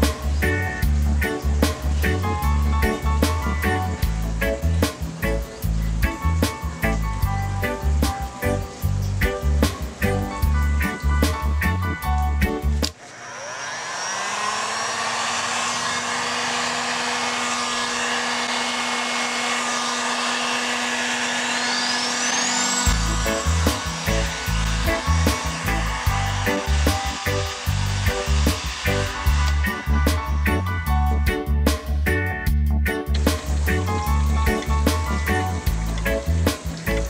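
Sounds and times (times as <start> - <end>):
upbeat music: 0.0 - 12.8, 22.6 - 37.0
heat gun fan whirring: 0.0 - 37.0.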